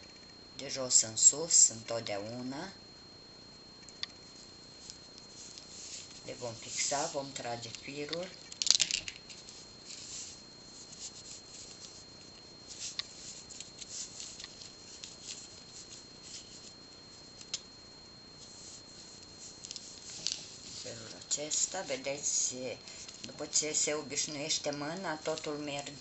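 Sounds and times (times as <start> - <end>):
beads and wire rustling: 4.2 - 17.7, 18.3 - 26.0.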